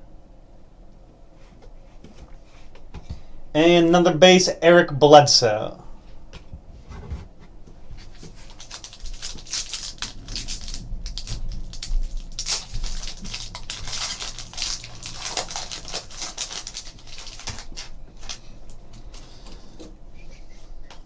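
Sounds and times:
card wrappers rustling and crinkling: 7.8s - 19.8s.

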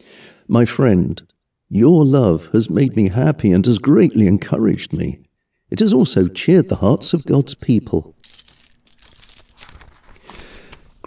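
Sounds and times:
chain rattling: 8.2s - 10.1s.

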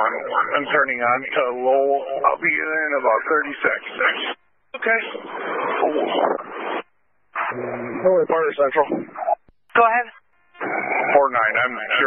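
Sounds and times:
radio hiss and static: 0.0s - 12.0s.

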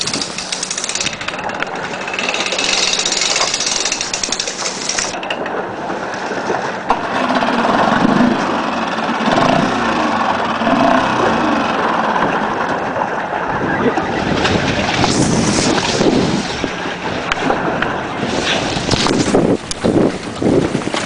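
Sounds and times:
outboard motor chugging: 0.0s - 21.0s.

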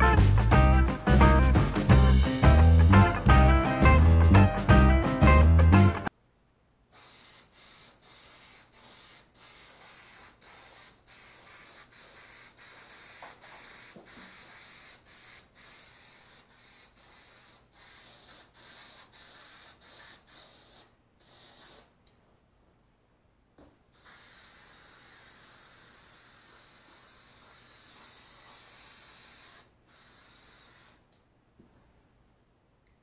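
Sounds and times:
aerosol spray hissing: 6.9s - 22.0s, 24.0s - 31.1s.

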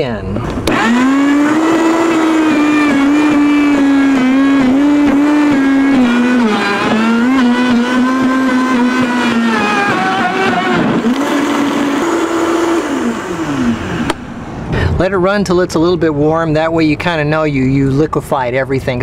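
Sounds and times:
blender motor running: 0.6s - 14.3s.

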